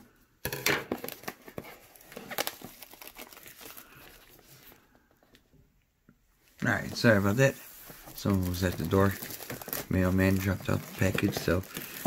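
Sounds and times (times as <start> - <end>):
plastic shrink-wrap crinkling and tearing: 0.9 - 4.8, 6.7 - 12.0.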